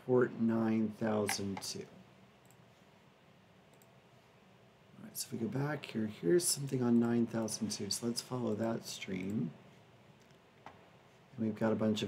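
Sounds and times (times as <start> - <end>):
computer mouse clicks: 3.7 - 4.0.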